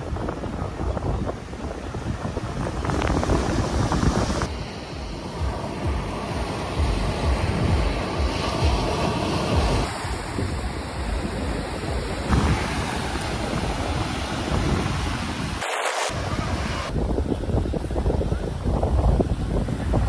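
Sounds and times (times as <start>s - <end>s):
ocean surf on sandy beach: 0.0s - 20.0s
wind buffeting microphone: 0.0s - 20.0s.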